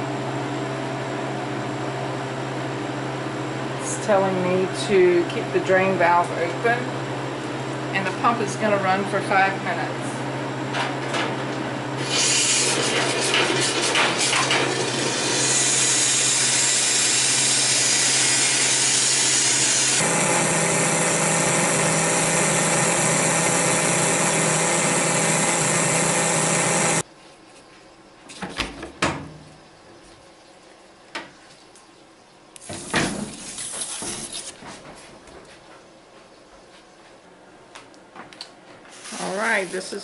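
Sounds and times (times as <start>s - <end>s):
vacuum pump humming and hissing: 0.0s - 27.5s, 38.7s - 40.0s.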